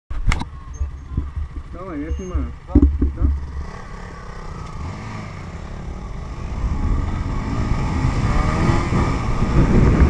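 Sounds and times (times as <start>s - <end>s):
wind and road noise rumble: 0.1s - 10.0s
sharp knock: 2.7s - 3.5s.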